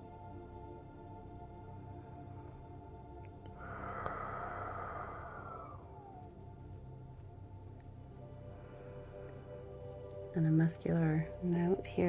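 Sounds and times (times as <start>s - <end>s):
ambient synth pad: 0.0s - 12.0s
breathy rushing noise: 3.6s - 6.4s.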